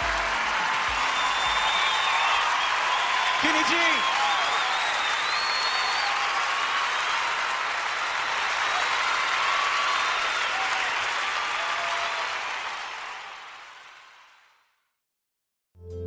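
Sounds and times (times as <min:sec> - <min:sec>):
audience applauding: 0:00.0 - 0:14.7
high whistles: 0:00.8 - 0:07.4.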